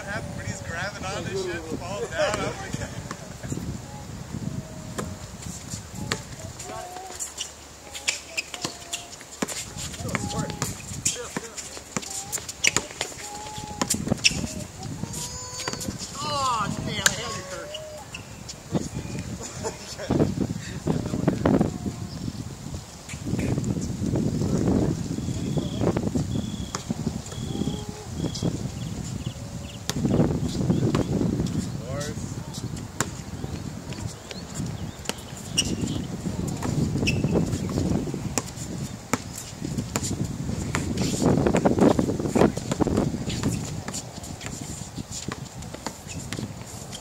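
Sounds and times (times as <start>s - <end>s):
players calling out: 0.0s - 3.6s, 6.1s - 18.2s
wind rumbling on microphone: 0.0s - 7.9s, 8.7s - 47.0s.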